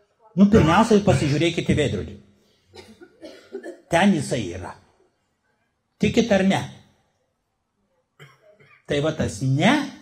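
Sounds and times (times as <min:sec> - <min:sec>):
man speaking through a microphone: 0:00.4 - 0:02.2, 0:03.8 - 0:04.8, 0:06.0 - 0:06.8, 0:08.8 - 0:10.0.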